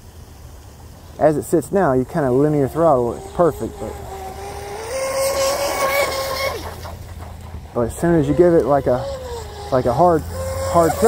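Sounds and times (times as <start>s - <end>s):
high-pitched electric motor whine: 1.6s - 11.0s.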